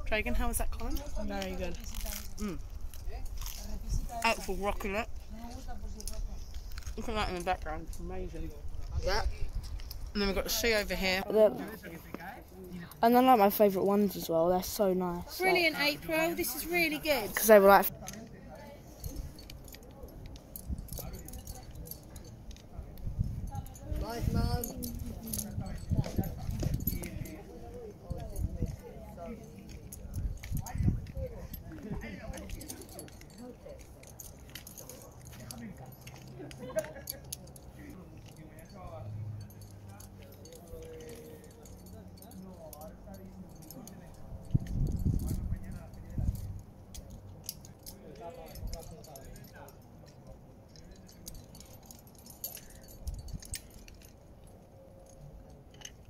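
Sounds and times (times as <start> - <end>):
indistinct voices talking: 0.0 - 56.0
metal climbing gear jingling: 0.0 - 56.0.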